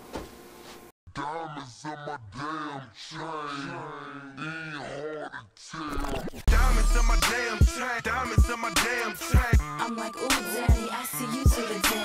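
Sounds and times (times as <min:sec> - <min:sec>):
person singing long held notes: 0:06.5 - 0:12.0.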